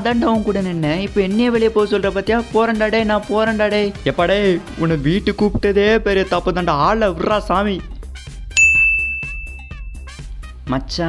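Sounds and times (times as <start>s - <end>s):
background music with steady beat: 0.0s - 11.0s
bell-like ding: 8.6s - 10.2s.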